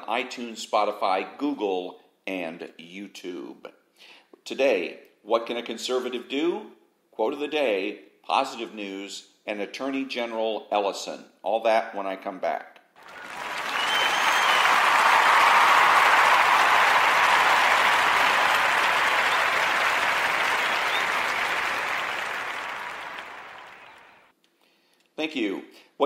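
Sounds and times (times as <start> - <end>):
crowd applause: 13.0 - 24.3.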